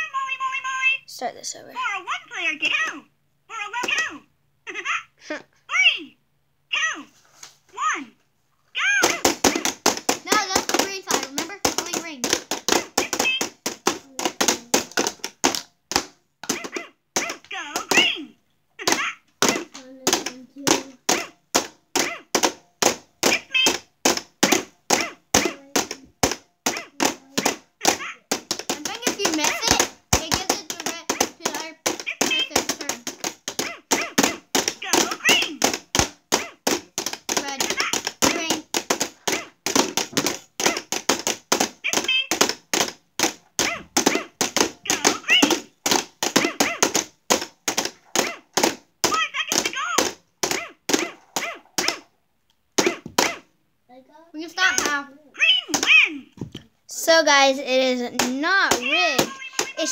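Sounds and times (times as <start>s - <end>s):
plastic mallets tapping game buttons: 9.0s - 18.1s, 18.8s - 52.1s, 58.1s - 59.9s
children's voices: 10.2s - 12.2s, 28.8s - 33.1s, 37.4s - 38.7s, 53.9s - 59.9s.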